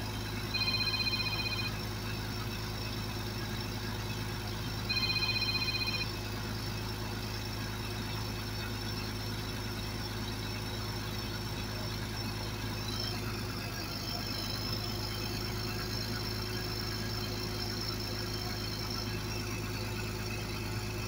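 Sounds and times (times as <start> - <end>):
faint high whine: 0.0 - 9.6
bulldozer diesel engine running: 0.0 - 21.0.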